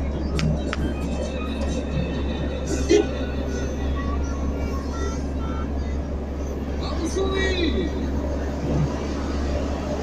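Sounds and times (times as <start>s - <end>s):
vehicle ride rumble: 0.0s - 10.0s
voices: 0.2s - 10.0s.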